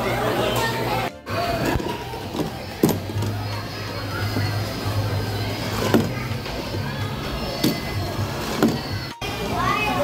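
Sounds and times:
children playing and calling out: 0:00.0 - 0:10.0.

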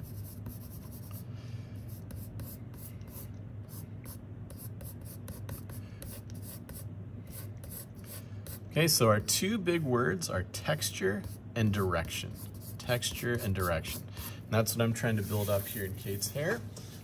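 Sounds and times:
pencil scratching on paper: 0:00.0 - 0:01.2, 0:01.8 - 0:08.7, 0:11.2 - 0:14.4.

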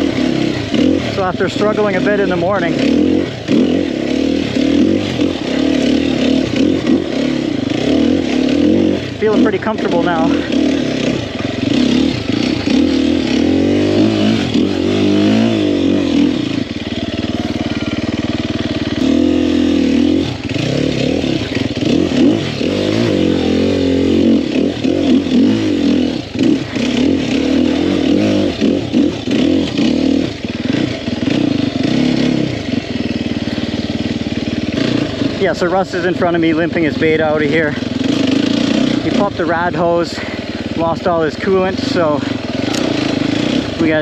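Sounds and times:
dirt bike engine revving: 0:00.0 - 0:44.0.

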